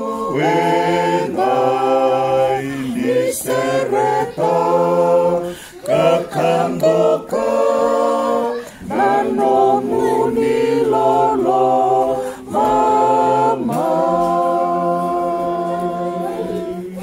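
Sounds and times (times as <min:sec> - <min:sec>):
men singing a hymn in harmony: 0:00.0 - 0:17.0.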